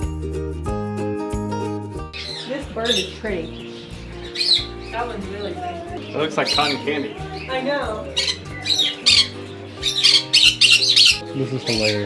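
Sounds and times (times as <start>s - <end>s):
background music with low notes: 0.0s - 12.0s
parrots squawking: 2.2s - 12.0s.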